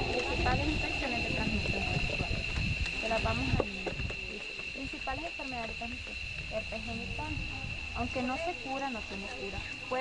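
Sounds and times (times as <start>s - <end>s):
people talking indistinctly: 0.0s - 10.0s
steady high-pitched whine: 0.0s - 10.0s.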